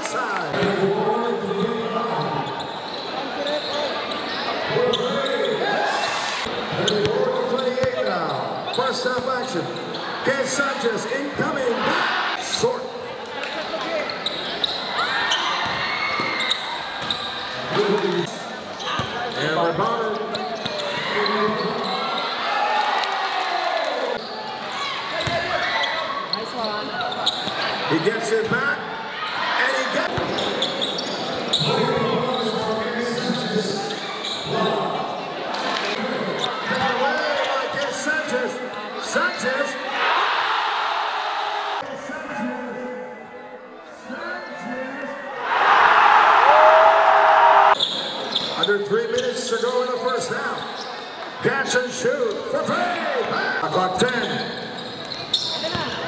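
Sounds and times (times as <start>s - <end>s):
crowd and player voices: 0.0s - 56.0s
basketball bouncing on court: 18.9s - 19.2s, 25.2s - 25.6s.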